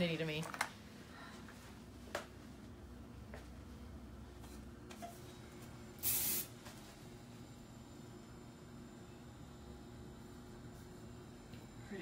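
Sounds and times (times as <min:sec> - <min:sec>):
hairspray hiss: 0:06.0 - 0:06.5.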